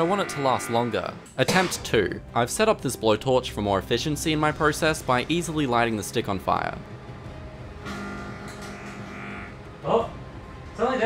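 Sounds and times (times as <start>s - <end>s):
microwave magnetron electrical hum: 7.6s - 9.7s.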